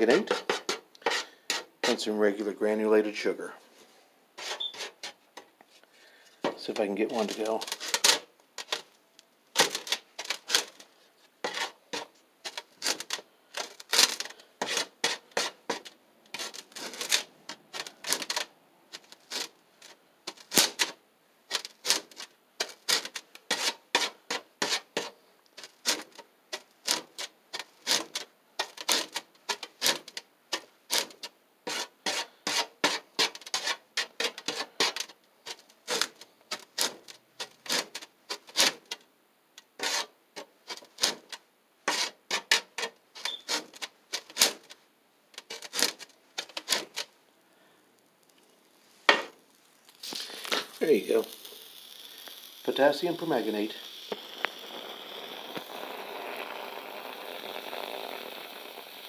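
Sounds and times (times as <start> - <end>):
wooden stick scraping gritty powder: 0.0 - 8.9, 9.6 - 39.0, 39.8 - 44.8, 45.4 - 47.1, 48.2 - 59.0.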